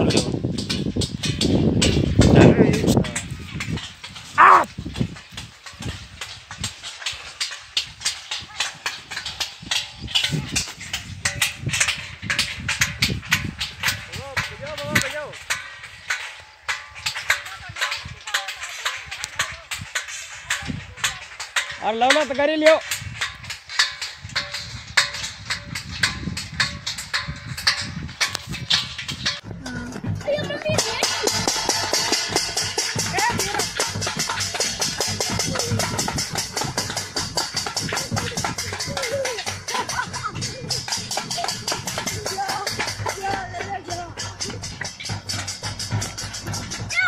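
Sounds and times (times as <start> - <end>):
metal plates being beaten: 0.0 - 47.0
voices shouting: 4.3 - 4.7.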